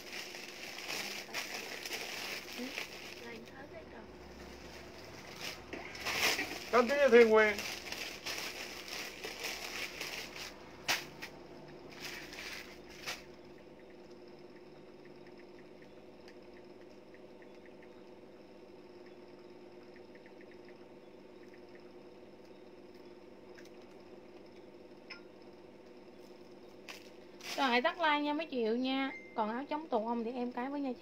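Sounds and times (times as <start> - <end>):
steady hum: 0.0 - 31.0.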